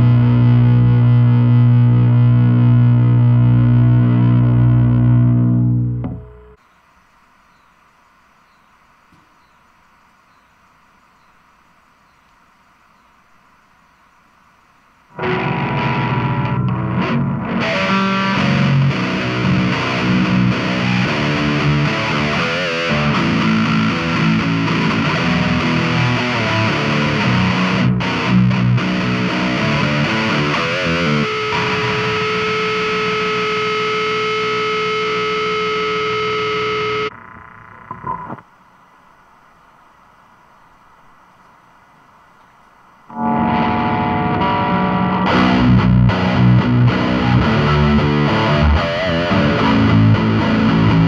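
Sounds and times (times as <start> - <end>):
distorted electric guitar riff: 0.0 - 6.6, 15.1 - 38.5, 43.1 - 51.0.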